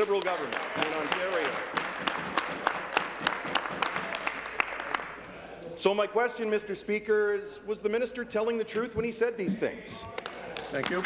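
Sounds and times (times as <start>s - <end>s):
hand clapping: 0.0s - 5.4s, 10.0s - 11.0s.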